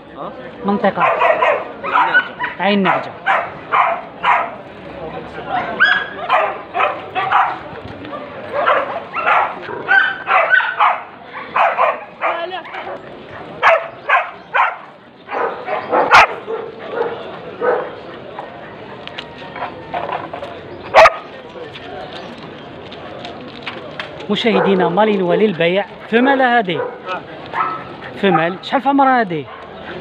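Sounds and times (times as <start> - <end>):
dogs barking: 0.9 - 4.6, 5.5 - 18.9, 20.9 - 21.3, 24.4 - 25.0, 26.7 - 28.8, 29.4 - 29.9
people talking: 16.8 - 29.4.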